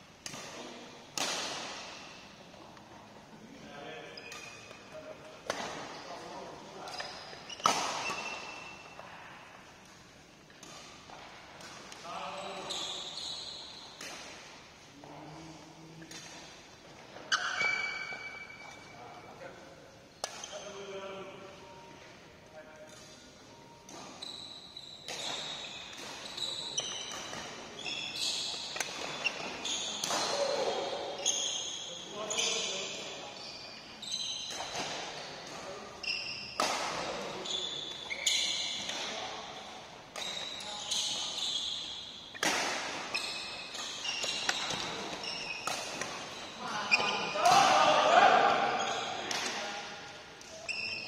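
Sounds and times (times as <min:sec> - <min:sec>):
racket hitting shuttlecock: 0:00.2 - 0:02.1, 0:05.4 - 0:06.3, 0:06.9 - 0:09.0, 0:20.2 - 0:20.7, 0:25.0 - 0:27.6, 0:28.2 - 0:30.8, 0:36.5 - 0:37.4, 0:42.3 - 0:49.6
shoes squeaking on court floor: 0:00.2 - 0:51.0
players' voices: 0:29.7 - 0:31.2, 0:46.6 - 0:50.1.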